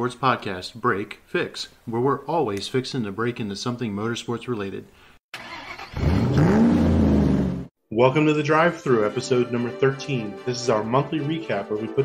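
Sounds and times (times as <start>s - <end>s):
car engine revving: 5.4s - 7.7s.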